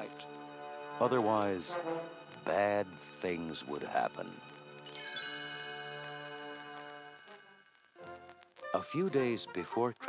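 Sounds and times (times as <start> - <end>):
bell chime ringing: 4.8 - 7.7.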